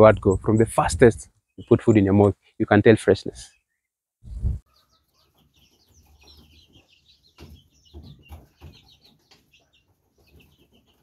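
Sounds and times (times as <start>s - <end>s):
chicks peeping: 0.0s - 2.3s, 3.3s - 11.0s.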